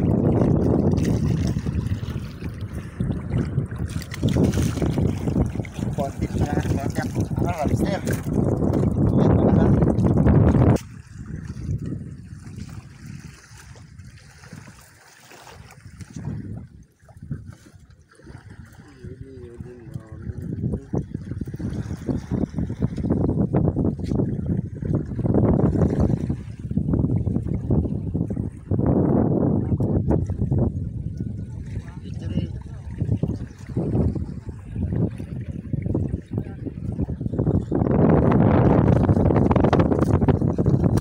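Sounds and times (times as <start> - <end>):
sea water sloshing: 0.0 - 41.0
wind noise on microphone: 0.0 - 41.0.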